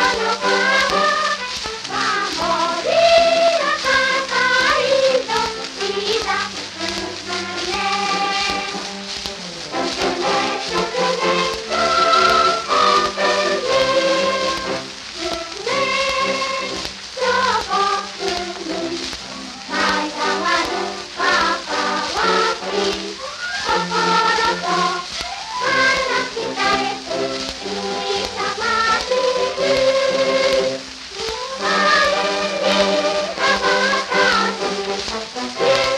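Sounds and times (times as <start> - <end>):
children's choir with orchestra: 0.0 - 35.9
record surface crackle: 0.0 - 35.9.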